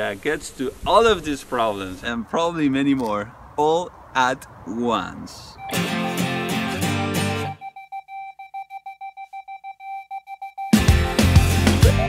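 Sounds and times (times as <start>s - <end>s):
rapid electronic beeping: 5.6s - 6.7s, 7.4s - 11.4s.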